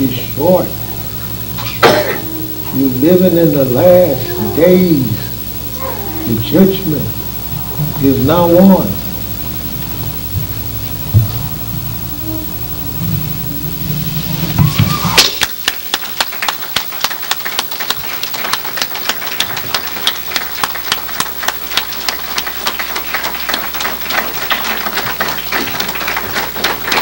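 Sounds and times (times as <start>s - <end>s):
low hum: 0.0s - 15.3s
audience clapping: 14.5s - 27.0s.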